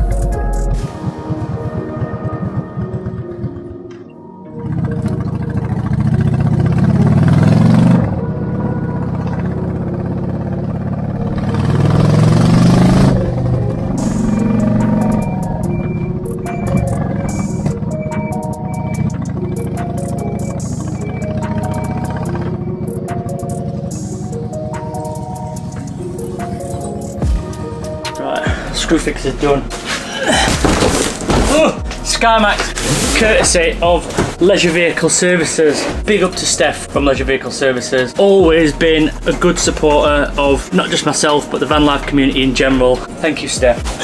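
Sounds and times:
background music: 0.0 - 44.0
motorcycle engine accelerating: 0.8 - 28.1.

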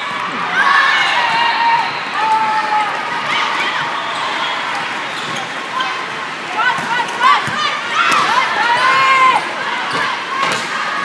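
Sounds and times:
hall full of voices: 0.0 - 11.0
shoes squeaking on court floor: 3.6 - 5.9.

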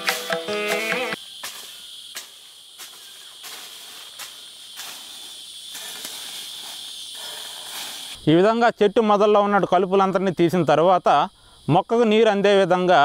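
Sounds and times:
hoe chopping dry soil: 0.0 - 6.9
crickets chirping: 0.0 - 13.0.

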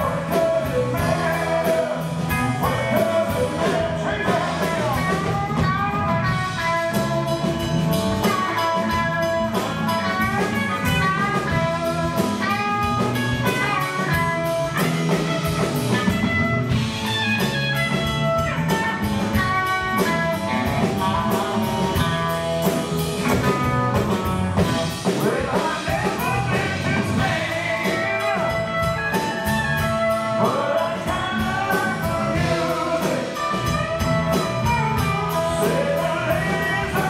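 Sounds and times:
bass guitar: 0.0 - 37.0
drum kit: 0.0 - 37.0
electric guitar melody: 0.0 - 37.0.

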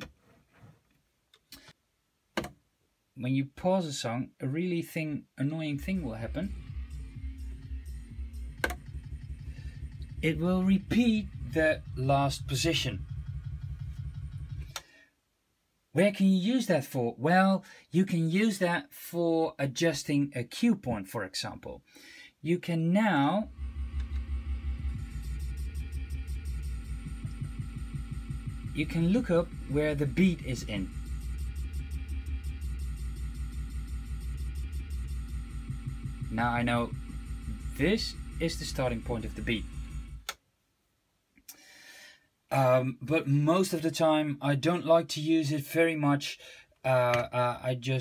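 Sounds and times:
rapid bass stutter: 5.7 - 14.8, 23.4 - 40.3.

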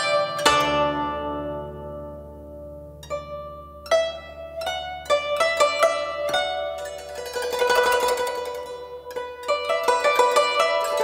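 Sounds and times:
plucked zither notes: 0.0 - 11.0.

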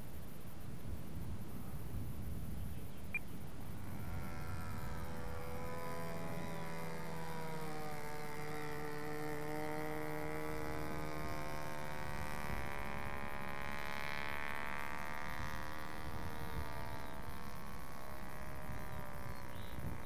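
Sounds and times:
model plane motor running: 3.2 - 20.0.

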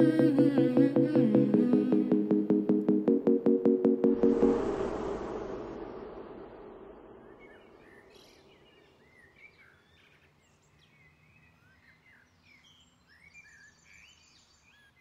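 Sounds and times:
music: 0.0 - 6.4
high even trill: 0.0 - 7.8
birds chirping and whistling: 7.2 - 10.1.

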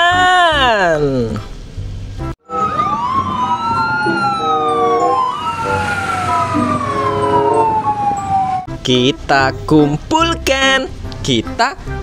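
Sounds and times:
fire engine sirens wailing: 2.4 - 8.7.

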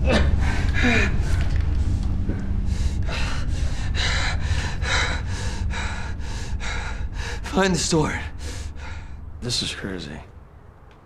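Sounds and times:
low steady hum: 0.0 - 11.0
man breathing hard: 0.2 - 9.4.

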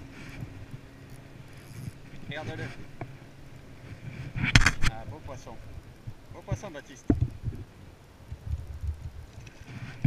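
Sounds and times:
water: 0.0 - 10.0
wind: 0.0 - 10.0.

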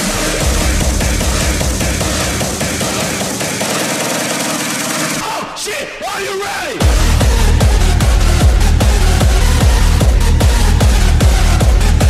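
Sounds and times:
electronic music with dense drums: 0.0 - 5.5, 6.7 - 12.0.

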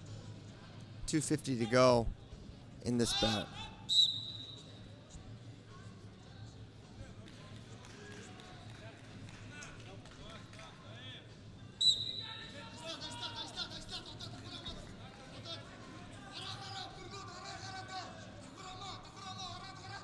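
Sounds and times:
crowd voices and shouts: 0.0 - 4.8, 5.8 - 20.0
referee's whistle blasts: 3.9 - 4.6, 11.8 - 12.4.

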